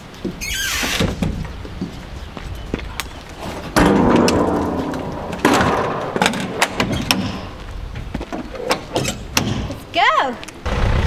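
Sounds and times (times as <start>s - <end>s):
metal door banging shut: 3.8s - 7.6s, 8.6s - 9.8s.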